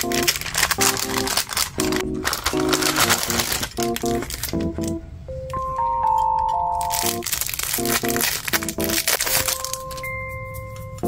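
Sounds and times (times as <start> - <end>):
plastic wrapping crinkling: 0.0 - 5.0, 6.7 - 10.2
soft background music: 0.0 - 11.0.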